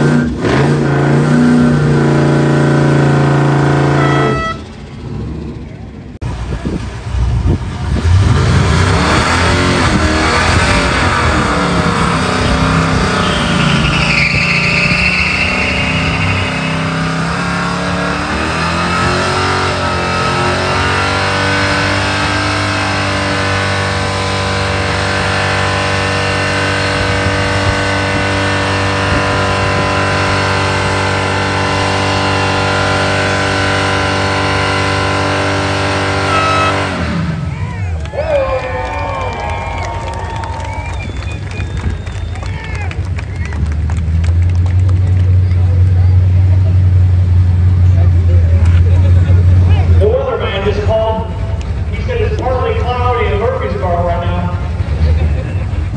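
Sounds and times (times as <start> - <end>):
truck engine revving hard: 0.0 - 55.9
tyres squealing: 12.4 - 17.3.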